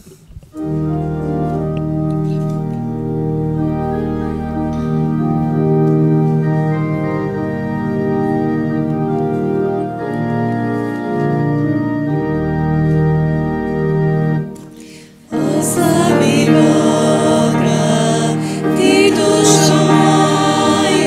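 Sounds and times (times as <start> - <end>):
church organ playing chords: 0.5 - 21.0.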